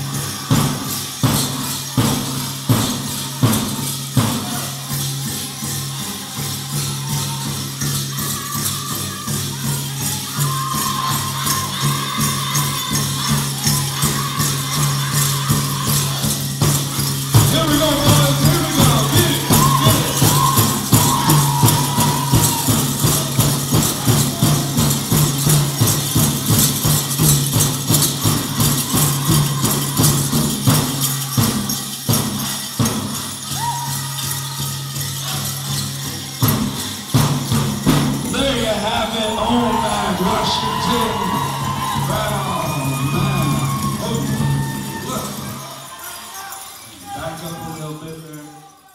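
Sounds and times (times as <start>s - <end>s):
bells jingling: 0.0s - 48.9s
singers singing: 10.3s - 23.2s, 38.2s - 47.2s
large drum beating: 15.3s - 30.8s, 36.5s - 44.8s.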